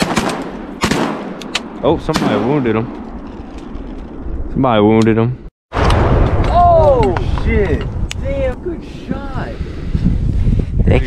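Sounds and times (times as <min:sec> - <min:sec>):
shotgun shots: 0:00.0 - 0:01.4, 0:02.1 - 0:02.7.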